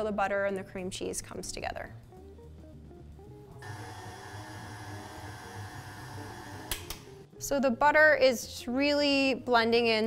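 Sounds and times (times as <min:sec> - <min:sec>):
background music: 0:00.0 - 0:10.0
stand mixer motor hum: 0:03.6 - 0:06.9.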